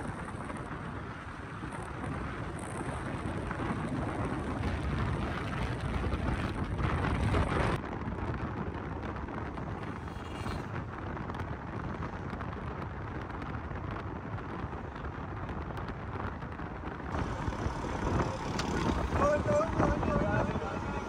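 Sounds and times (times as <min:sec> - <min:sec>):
vehicle road and wind noise: 0:00.0 - 0:21.0.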